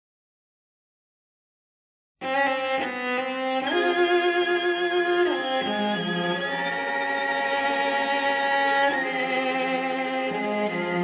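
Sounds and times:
bowed strings music: 2.2 - 11.0.

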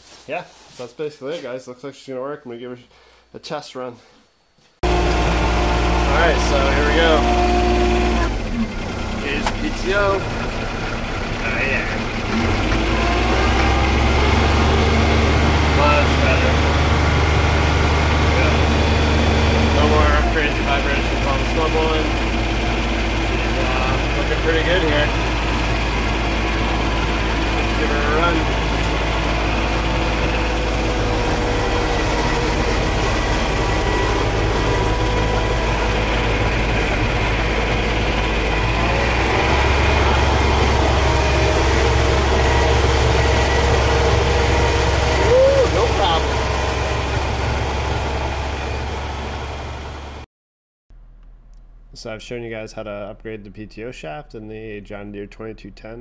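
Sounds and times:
diesel tractor engine running: 4.8 - 50.2.

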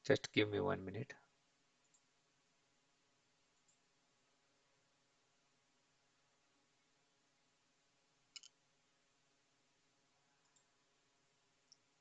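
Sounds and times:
faint clicks: 1.8 - 2.1, 3.6 - 3.8, 8.3 - 8.6, 10.4 - 10.7.

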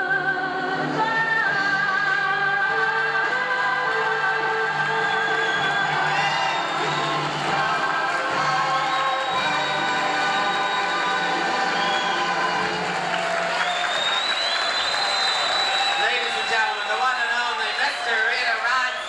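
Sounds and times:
person singing with accompaniment: 0.0 - 12.8
audience applause and cheering: 2.2 - 19.0.

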